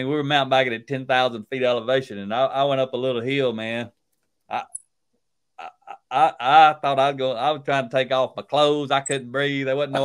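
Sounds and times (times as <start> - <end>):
man laughing: 5.6 - 6.5.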